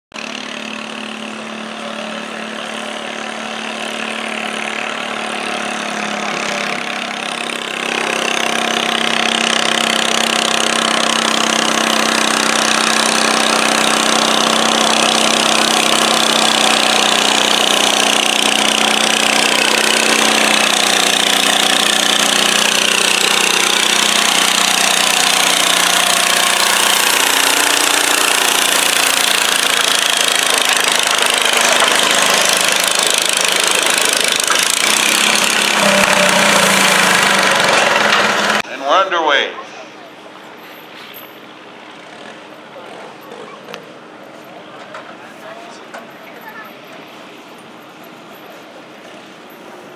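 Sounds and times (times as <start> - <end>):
tractor engine running under load: 0.1 - 38.6.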